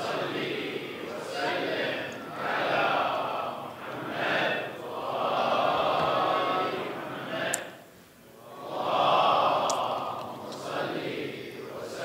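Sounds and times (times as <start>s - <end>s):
congregation reciting together: 0.0s - 12.0s.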